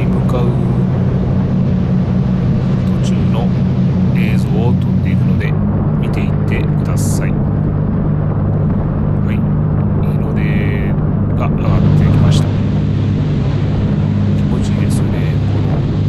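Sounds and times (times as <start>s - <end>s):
boat engines droning: 0.0s - 16.0s
churning wake rushing: 0.0s - 16.0s
wind: 0.0s - 16.0s.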